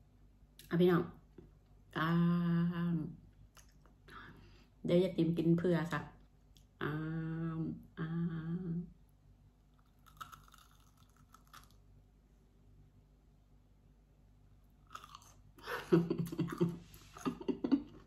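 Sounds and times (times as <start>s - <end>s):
woman humming mmm: 6.8s - 8.9s
woman chewing crunchy food: 9.8s - 11.8s, 14.8s - 15.6s.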